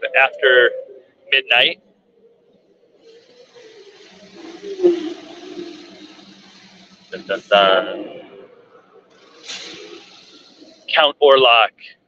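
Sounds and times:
low hum: 0.0 - 11.4
rushing noise from speaker: 1.3 - 1.8, 3.0 - 11.8.

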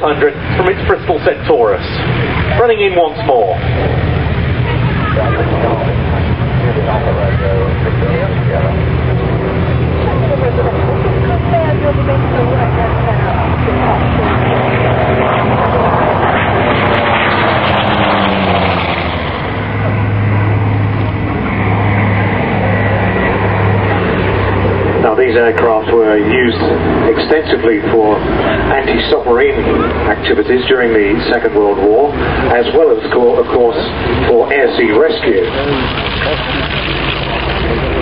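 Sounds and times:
propeller aircraft engines droning: 0.0 - 38.0.

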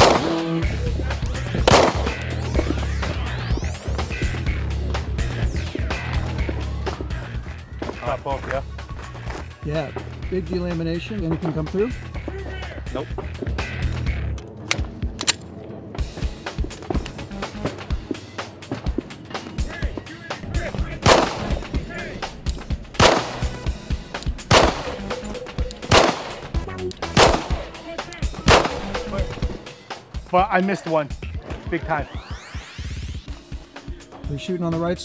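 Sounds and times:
pistol shots: 0.0 - 0.6, 1.6 - 2.3, 21.0 - 21.8, 22.9 - 23.8, 24.4 - 27.8, 28.4 - 29.4.

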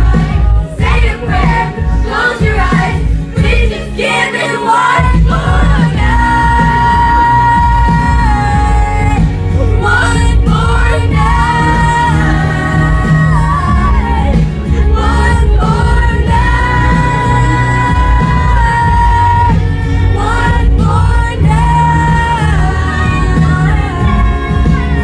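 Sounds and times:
amplified backing with heavy bass: 0.0 - 25.0
woman singing into microphone: 0.0 - 25.0.

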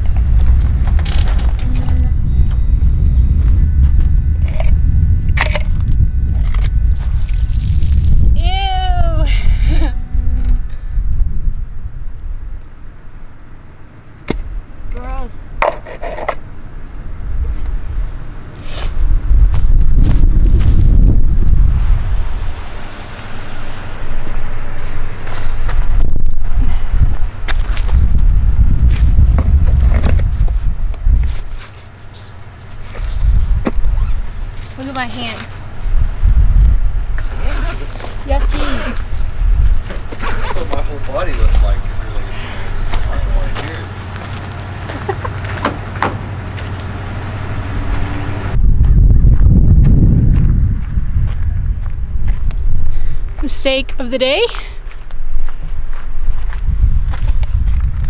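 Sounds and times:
vehicle engine rumble: 0.0 - 58.0
person calling out: 8.4 - 10.6, 38.4 - 39.0.

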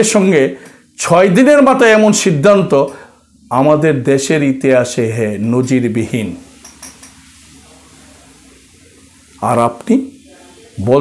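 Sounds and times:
man speaking: 0.0 - 2.9, 3.5 - 6.4, 9.4 - 10.2, 10.8 - 11.0
faint room hum: 0.0 - 11.0.

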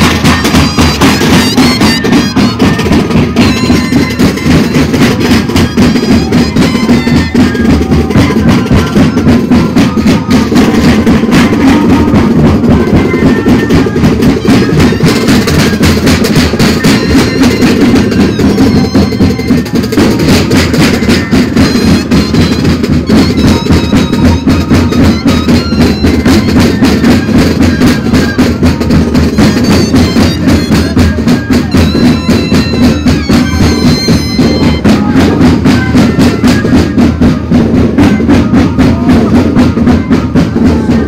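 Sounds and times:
chorus of flutes: 0.0 - 41.0
steady drum beat: 0.0 - 41.0.

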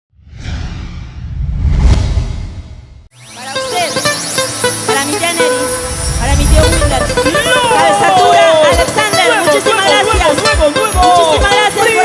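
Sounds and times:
whoosh: 0.1 - 3.1, 5.7 - 8.1
deep rumble: 0.2 - 3.1, 5.8 - 7.8.

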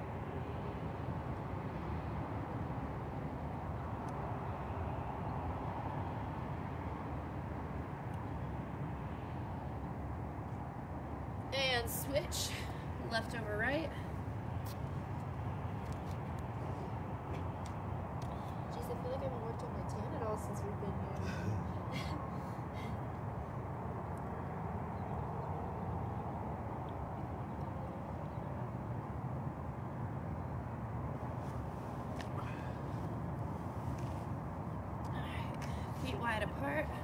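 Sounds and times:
low outdoor rumble: 0.0 - 37.0.

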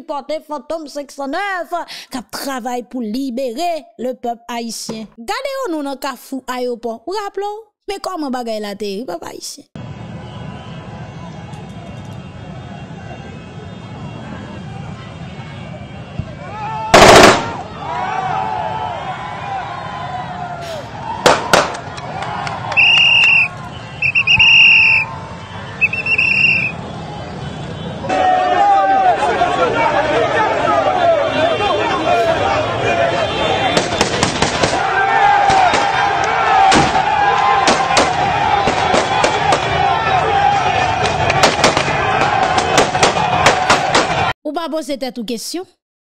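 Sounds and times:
street crowd noise: 9.8 - 44.4
loud whistle blasts: 10.2 - 14.6, 22.4 - 28.6
gunshots: 17.0 - 17.7, 21.2 - 21.8, 33.6 - 34.8, 35.4 - 36.0, 36.6 - 39.7, 41.0 - 44.3
sharp bangs: 17.0 - 17.7, 21.2 - 21.9, 33.6 - 39.8, 41.0 - 44.3.

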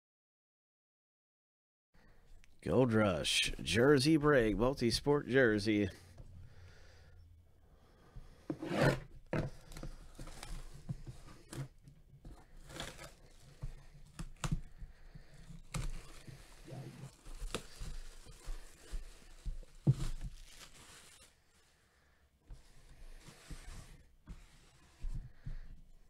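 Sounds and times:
plastic packaging tearing and crinkling: 12.4 - 14.6, 15.4 - 21.4.

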